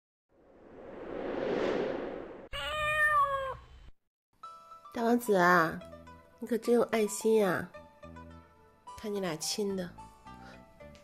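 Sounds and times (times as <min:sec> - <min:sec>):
whoosh: 0:00.4 - 0:02.5
cat meowing: 0:02.5 - 0:03.6.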